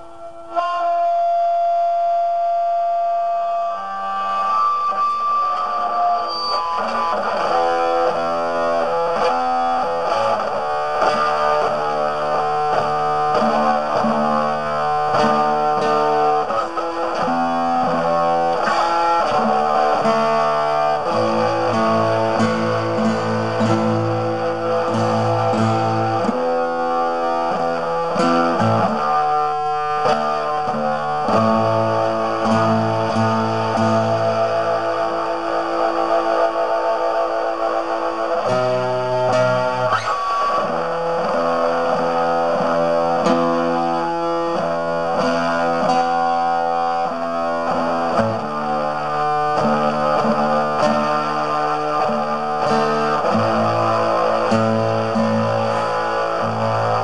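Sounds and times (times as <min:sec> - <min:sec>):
guitar with effects: 0:00.0 - 0:57.0.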